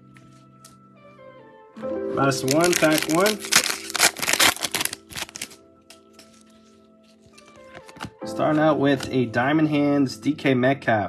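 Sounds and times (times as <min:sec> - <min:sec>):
background music: 0:00.0 - 0:11.0
wrapper crinkling: 0:02.2 - 0:08.2.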